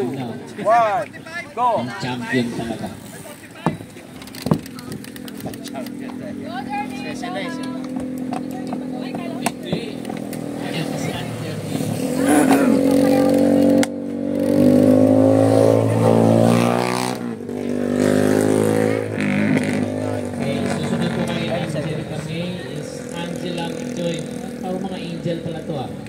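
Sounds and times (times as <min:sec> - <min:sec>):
voices: 0:00.0 - 0:14.2, 0:14.9 - 0:26.0
vehicle engine running and revving: 0:04.6 - 0:26.0.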